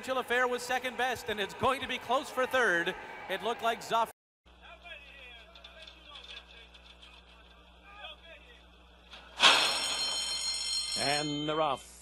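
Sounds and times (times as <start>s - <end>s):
starting gate bell ringing: 9.4s - 12.0s.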